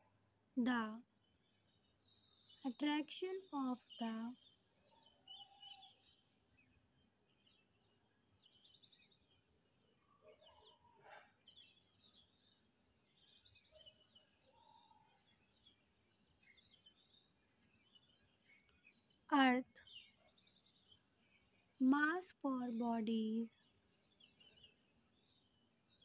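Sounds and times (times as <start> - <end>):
faint bird chirps and trills: 0.0 - 26.0.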